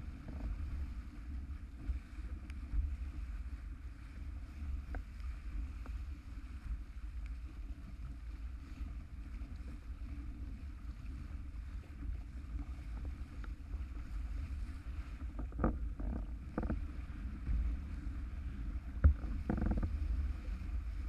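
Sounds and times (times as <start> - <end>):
water rushing under board: 0.0 - 21.0
wind rumbling on microphone: 0.0 - 21.0.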